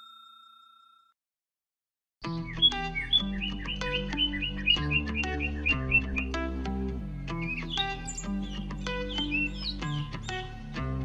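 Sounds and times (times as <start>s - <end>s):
background music with bass line: 2.2s - 11.0s
small bird chirping: 2.3s - 6.3s, 7.3s - 10.6s.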